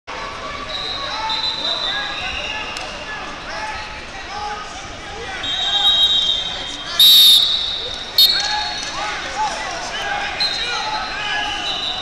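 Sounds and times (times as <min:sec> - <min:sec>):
chatter of many voices: 0:00.1 - 0:12.0.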